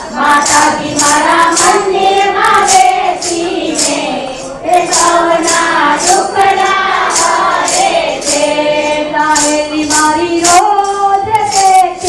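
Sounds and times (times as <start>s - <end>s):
group singing devotional song: 0.0s - 12.0s
sharp percussion strokes: 0.0s - 12.0s.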